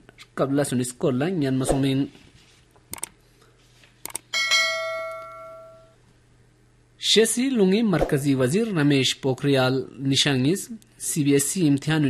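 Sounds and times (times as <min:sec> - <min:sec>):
quick clicks: 0:02.9 - 0:03.2, 0:04.0 - 0:04.3
bright bell chime: 0:04.4 - 0:06.0.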